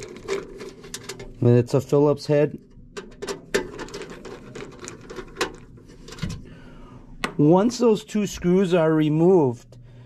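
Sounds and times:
screwdriver clicking and scraping metal: 0.0 - 1.4, 3.0 - 6.3.

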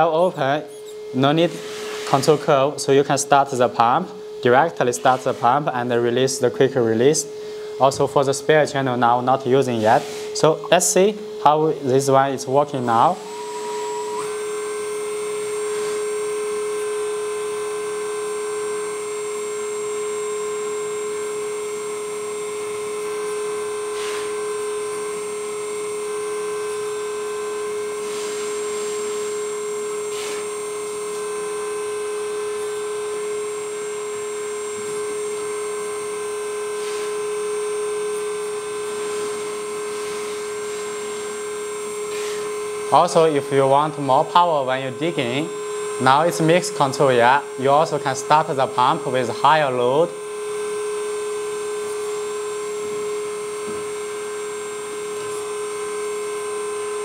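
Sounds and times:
electric hydraulic pump whine: 0.0 - 57.0.

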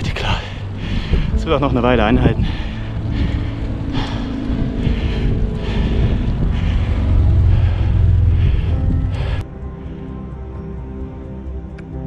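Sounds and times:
wind buffeting microphone: 0.0 - 9.4
background music: 0.0 - 12.0.

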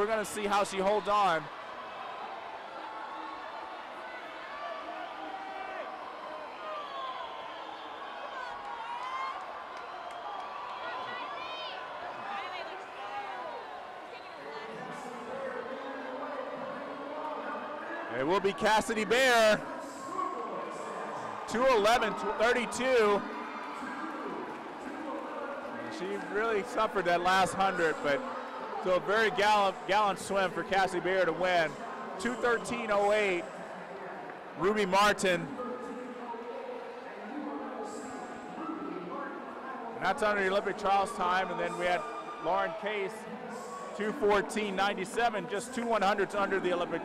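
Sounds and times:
crowd cheering and yelling: 0.0 - 47.0.

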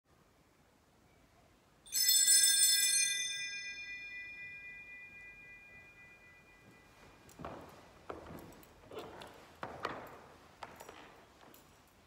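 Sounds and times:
small bell ringing: 1.9 - 7.4.

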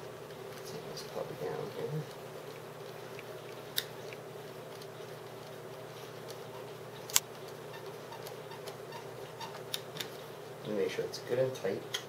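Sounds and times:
steady low hum: 0.0 - 12.0
sharp click: 7.1 - 7.3
man speaking: 10.6 - 11.9.

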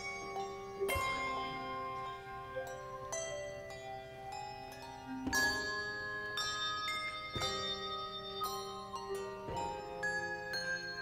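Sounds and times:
handbells ringing: 0.0 - 11.0.

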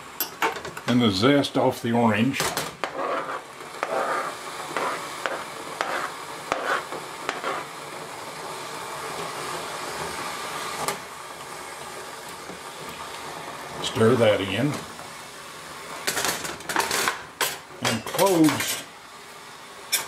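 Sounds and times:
hot syrup hissing: 1.1 - 16.3, 17.0 - 20.0.

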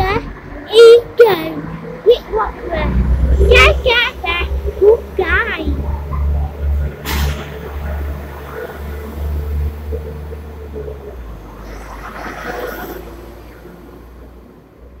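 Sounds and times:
train engine and wheel rumble: 0.0 - 15.0.

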